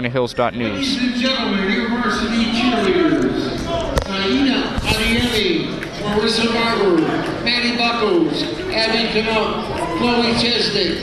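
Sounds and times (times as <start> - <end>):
man speaking over public address: 0.0 - 11.0.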